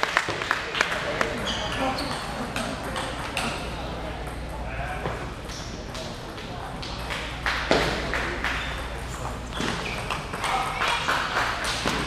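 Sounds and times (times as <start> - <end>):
people talking: 0.4 - 12.0
table tennis ball strike: 11.6 - 12.0.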